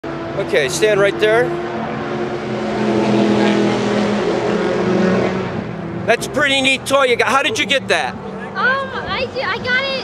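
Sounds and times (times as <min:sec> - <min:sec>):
race car engines: 0:00.0 - 0:10.0.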